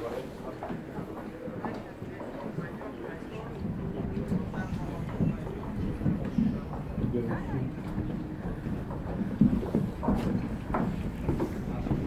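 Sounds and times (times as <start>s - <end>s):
footsteps on wooden planks: 0.0s - 12.0s.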